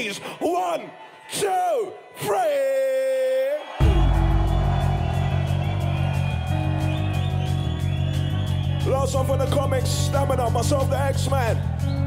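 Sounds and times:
drum and bass track: 0:03.8 - 0:12.0.

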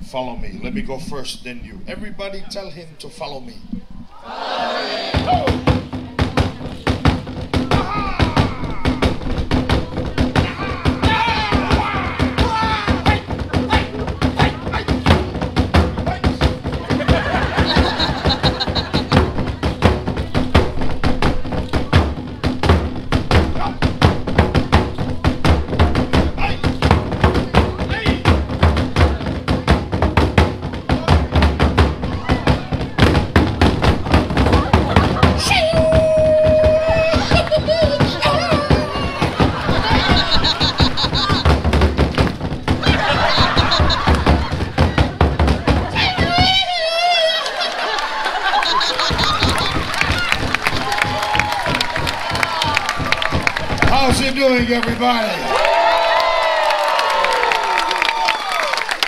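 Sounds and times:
crowd voices: 0:03.6 - 0:59.0
fast rhythmic drumming: 0:03.6 - 0:59.0.

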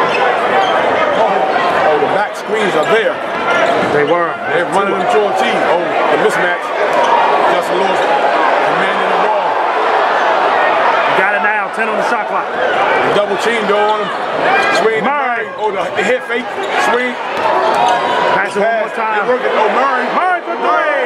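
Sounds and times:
voices of players and crowd: 0:00.0 - 0:21.0.

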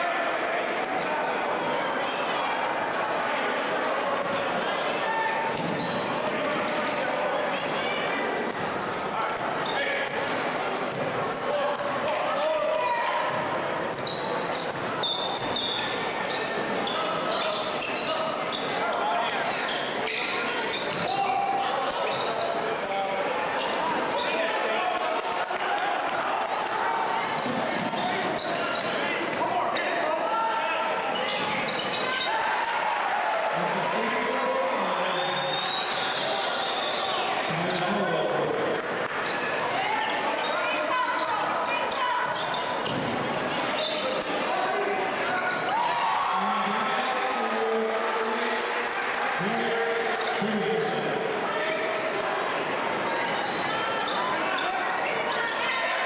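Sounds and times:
crowd chatter and shouts: 0:00.0 - 0:56.0.

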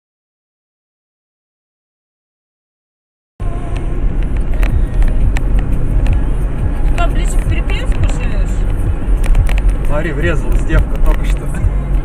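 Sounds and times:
car engine and road noise: 0:03.4 - 0:12.0.

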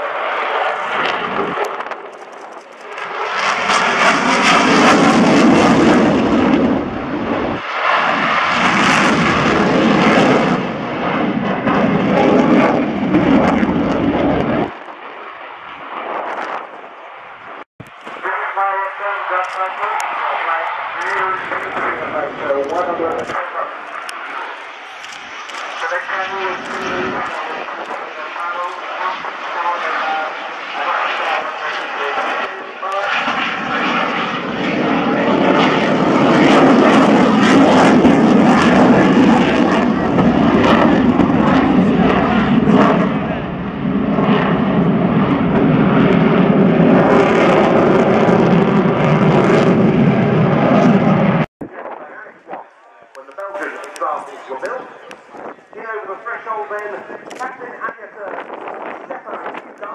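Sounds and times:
fighter jet engine: 0:00.0 - 0:59.9
voices: 0:18.2 - 0:24.6, 0:51.9 - 0:58.4.

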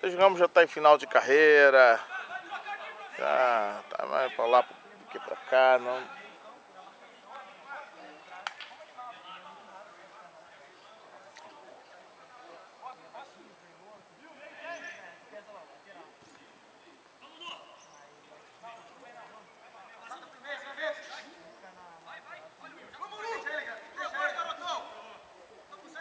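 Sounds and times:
distant players calling out: 0:01.0 - 0:26.0.

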